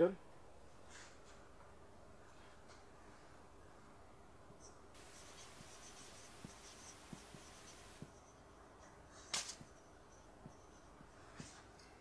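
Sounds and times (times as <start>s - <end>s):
marker squeaking on whiteboard: 5.0s - 8.0s
small ticks: 5.0s - 8.1s.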